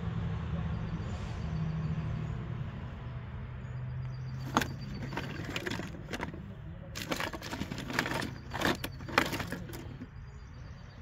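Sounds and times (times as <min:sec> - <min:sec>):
vehicle engine humming: 0:02.3 - 0:10.2
plastic toys clicking together: 0:07.0 - 0:10.1.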